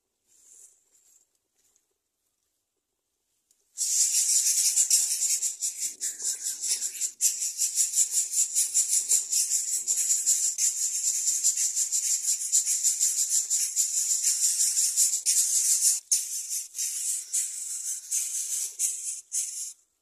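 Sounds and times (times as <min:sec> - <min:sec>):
nestlings begging with rasping hiss: 0:03.8 - 0:19.8.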